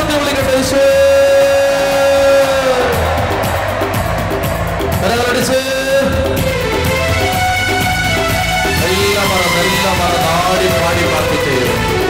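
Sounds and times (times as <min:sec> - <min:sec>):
instrumental worship music: 0:00.0 - 0:12.0.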